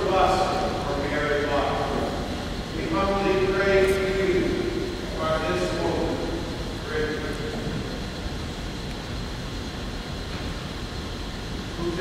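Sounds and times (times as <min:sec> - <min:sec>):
distant echoing voice: 0:00.0 - 0:08.0
low room rumble: 0:00.0 - 0:12.0.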